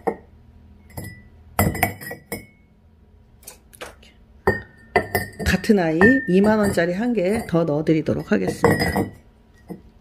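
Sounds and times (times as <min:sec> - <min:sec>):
ceramic flowerpots clinking: 0:00.8 - 0:02.6, 0:04.4 - 0:09.9.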